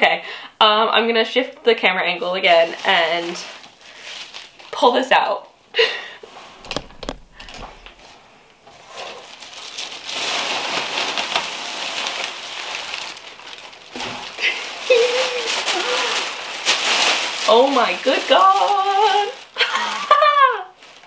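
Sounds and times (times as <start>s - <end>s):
plastic wrapping rustling: 1.2s - 21.0s.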